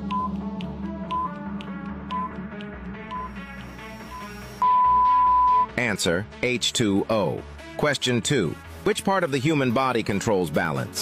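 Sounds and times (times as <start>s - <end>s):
ticking quiz timer music: 0.0s - 5.9s
short high beeps: 4.1s - 5.7s.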